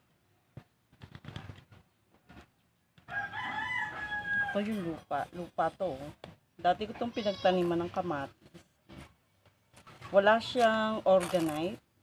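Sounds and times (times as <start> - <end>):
rooster crowing: 3.1 - 4.8.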